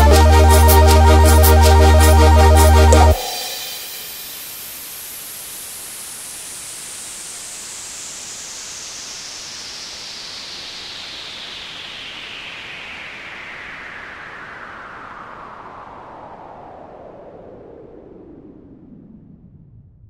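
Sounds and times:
synthesized white-noise sweep: 0:00.0 - 0:16.5.

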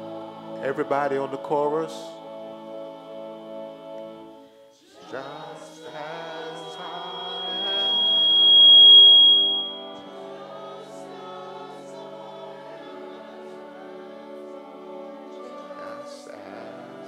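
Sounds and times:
choir singing a hymn: 0:00.0 - 0:17.0
organ chords: 0:00.0 - 0:17.0
high whistling tone: 0:05.8 - 0:10.4.

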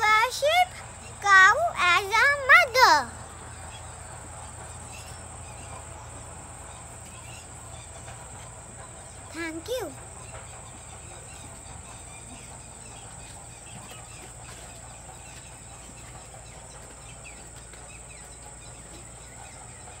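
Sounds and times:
insects droning: 0:00.0 - 0:20.0.

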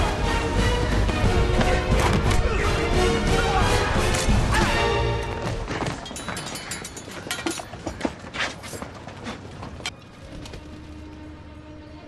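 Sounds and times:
metallic clicks of muskets: 0:06.1 - 0:08.8.

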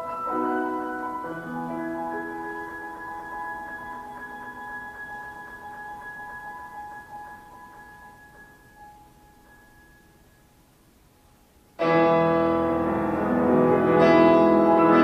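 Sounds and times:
grand piano notes: 0:00.0 - 0:10.6, 0:11.8 - 0:15.0.

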